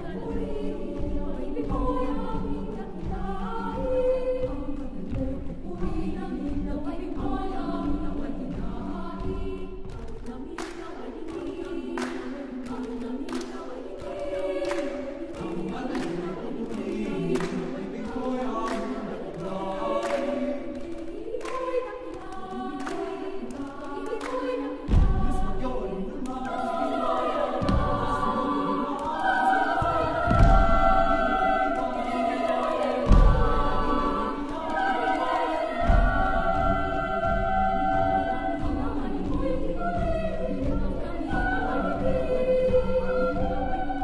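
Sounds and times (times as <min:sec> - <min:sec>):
choir singing unaccompanied: 0:00.0 - 0:44.0.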